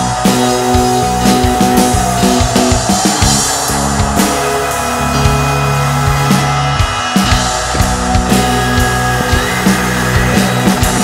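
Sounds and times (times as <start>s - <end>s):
electric bass low note: 0.0s - 11.0s
rock band instrumental: 0.0s - 11.0s.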